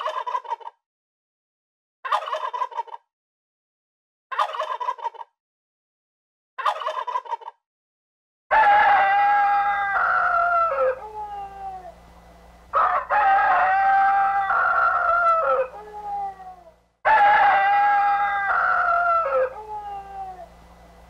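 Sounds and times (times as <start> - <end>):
turkey gobbling: 0.0 - 0.7, 2.1 - 3.0, 4.3 - 5.3, 6.6 - 7.6, 12.8 - 16.4
rooster crowing: 8.5 - 12.1, 12.7 - 20.6.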